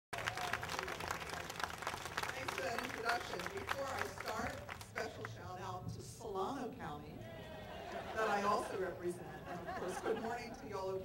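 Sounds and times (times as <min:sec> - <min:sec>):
audience clapping: 0:00.1 - 0:05.3.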